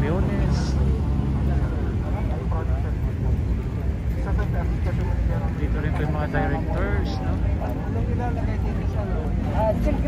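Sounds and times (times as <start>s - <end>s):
faint voices talking: 0.0s - 10.0s
low outdoor rumble: 0.0s - 10.0s.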